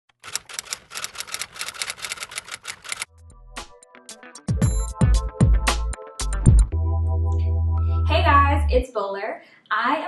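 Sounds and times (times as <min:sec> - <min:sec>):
typewriter keys clacking: 0:00.1 - 0:03.1
electronic music with low drone: 0:03.1 - 0:08.0.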